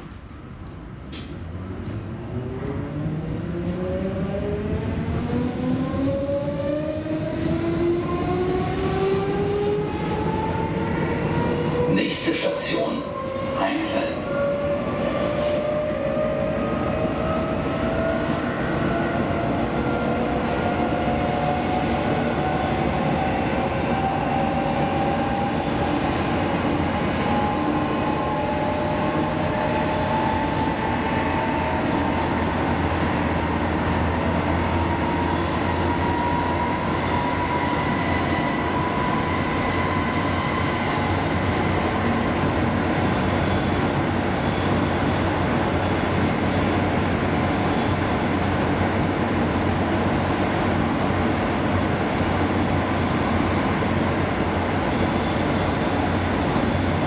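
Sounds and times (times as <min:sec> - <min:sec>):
train running gear rumble: 0:00.0 - 0:02.2.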